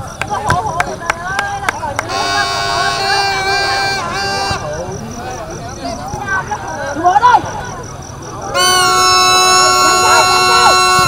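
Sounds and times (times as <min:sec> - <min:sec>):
long steady horn blast: 0:02.0 - 0:04.9, 0:08.5 - 0:11.0
people shouting: 0:02.0 - 0:07.7, 0:08.4 - 0:11.0.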